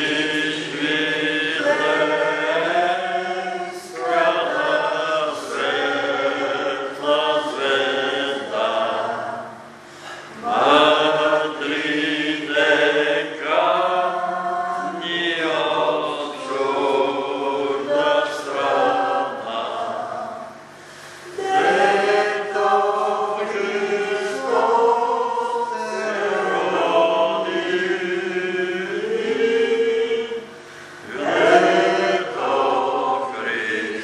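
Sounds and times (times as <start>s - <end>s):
congregation singing a hymn: 0.0s - 34.0s.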